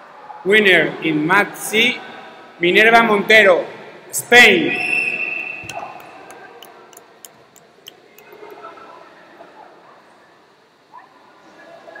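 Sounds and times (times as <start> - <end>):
low hum of a sports hall: 0.0 - 12.0
hand claps: 5.6 - 8.5.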